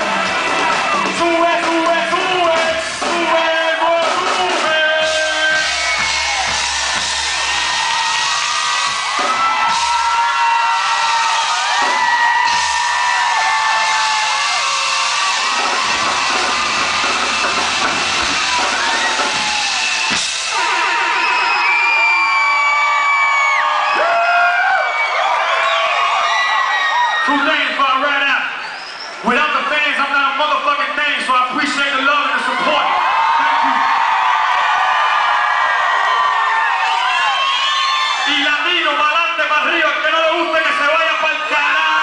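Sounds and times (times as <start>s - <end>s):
crowd screaming and whooping: 0.0s - 29.4s, 32.1s - 42.0s
distorted live concert music: 0.0s - 34.3s.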